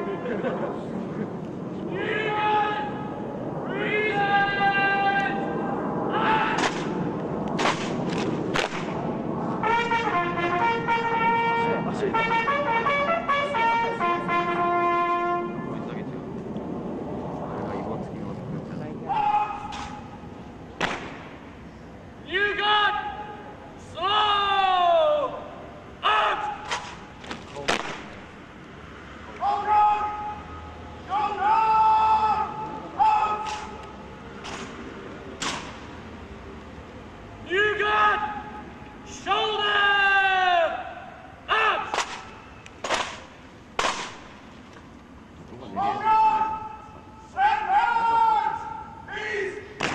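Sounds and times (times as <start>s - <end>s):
sharp crack: 6.4s - 10.1s, 19.5s - 21.6s, 26.5s - 28.4s, 33.4s - 36.1s, 41.8s - 44.9s
bugle note: 9.6s - 15.9s
shouted drill commands: 22.3s - 25.4s, 29.4s - 33.5s, 37.4s - 42.0s, 45.8s - 49.7s
sharp drill cracks: 35.4s - 35.9s, 41.9s - 44.4s.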